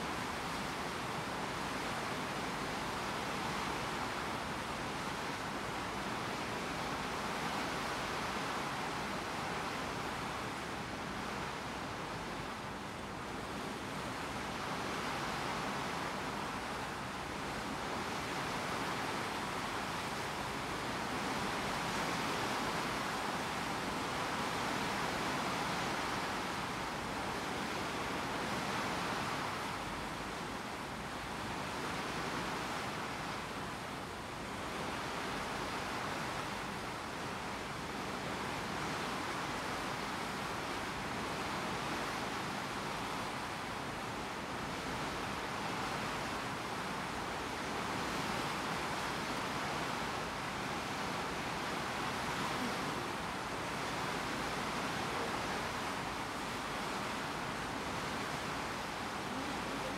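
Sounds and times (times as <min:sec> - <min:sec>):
water rushing and splashing: 0:00.0 - 0:59.9.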